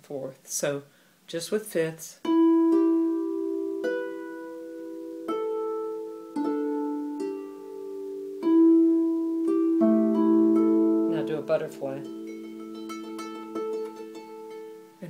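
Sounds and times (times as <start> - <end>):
harp plucked notes ringing: 2.2 - 15.0.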